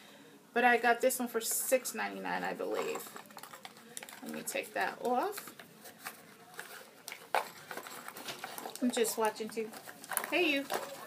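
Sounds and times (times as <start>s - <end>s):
handling noise: 2.7s - 11.0s.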